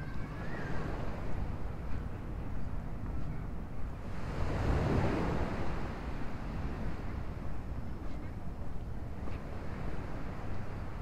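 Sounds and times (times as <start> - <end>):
surf washing: 0.0 - 11.0
wind rumbling on microphone: 0.0 - 11.0.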